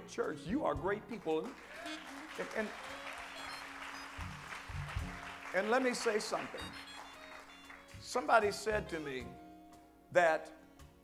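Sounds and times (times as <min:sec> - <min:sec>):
congregation applauding: 0:01.4 - 0:08.6.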